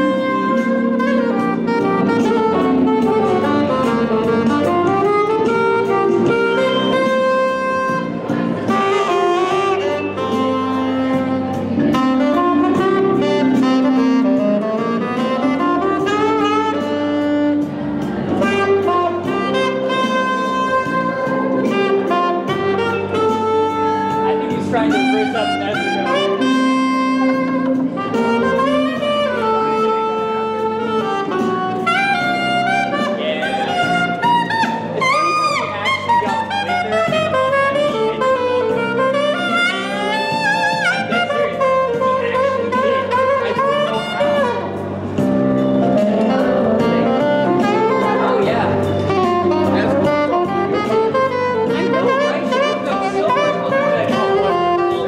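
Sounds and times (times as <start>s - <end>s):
saxophone melody: 0.0s - 55.0s.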